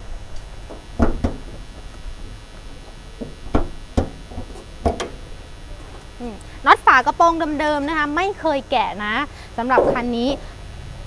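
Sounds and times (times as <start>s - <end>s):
car hood latch clicks and knocks: 3.5s - 5.2s.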